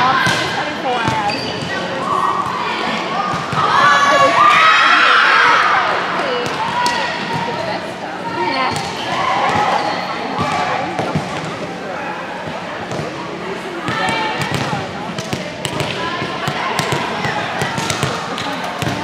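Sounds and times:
girls calling and shouting: 0.0s - 10.3s.

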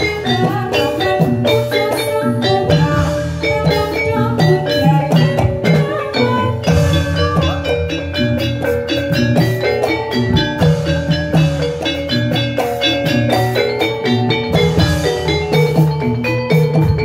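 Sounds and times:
steady drumming: 0.0s - 17.0s
struck metallophones playing: 0.0s - 17.0s.

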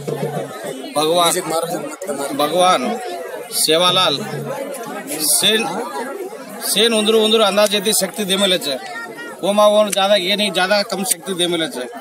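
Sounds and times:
crowd chattering: 0.0s - 12.0s
man speaking into a microphone: 6.6s - 8.8s, 9.4s - 12.0s.

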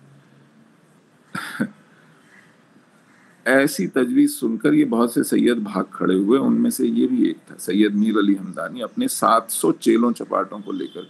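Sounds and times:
man coughing: 1.4s - 1.8s.

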